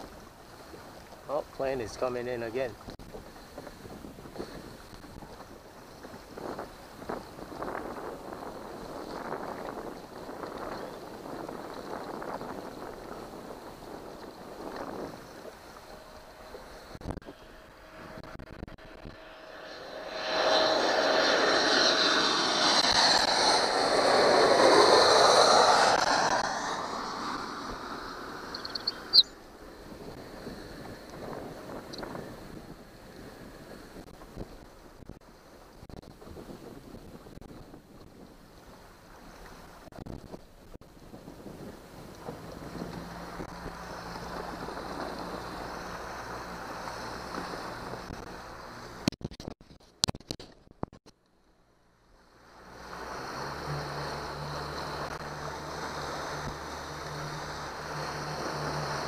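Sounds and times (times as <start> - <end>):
jet airliner flying overhead: 0.0 - 34.0, 41.2 - 49.0, 52.2 - 59.0.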